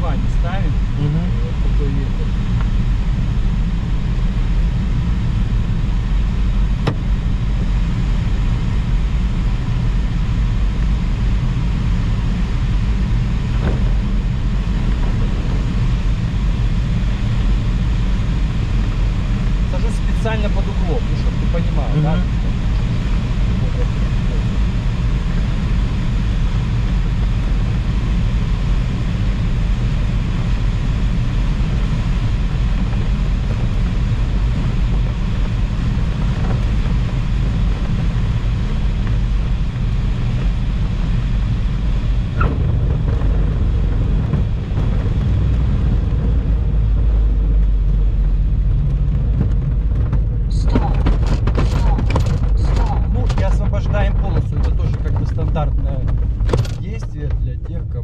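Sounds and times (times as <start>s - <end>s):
airflow rushing around cockpit: 0.0s - 58.0s.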